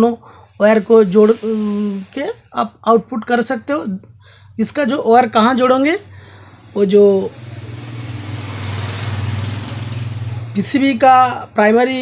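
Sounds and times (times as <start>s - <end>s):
small engine humming: 6.0s - 11.5s.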